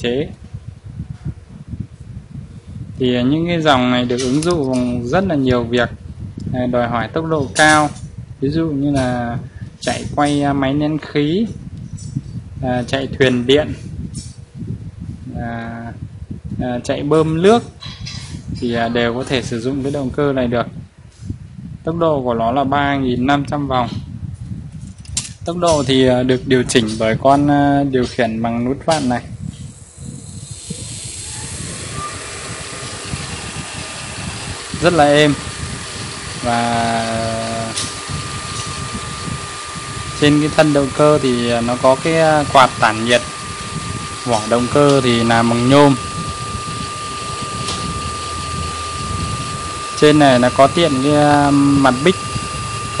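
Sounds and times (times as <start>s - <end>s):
electric motor whining: 29.4s - 53.0s.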